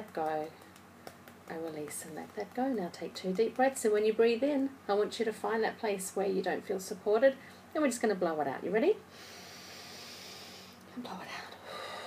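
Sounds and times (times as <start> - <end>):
woman breathing in deeply: 9.1 - 10.8, 11.6 - 12.0.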